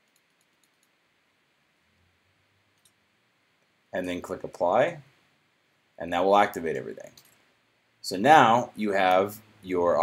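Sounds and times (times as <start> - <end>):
computer mouse click: 0.0 - 1.0, 2.8 - 3.0, 7.0 - 7.4.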